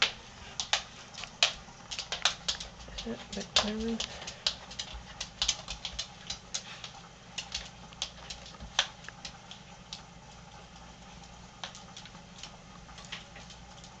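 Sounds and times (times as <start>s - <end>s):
animal claws scratching wood floor: 0.0s - 10.0s.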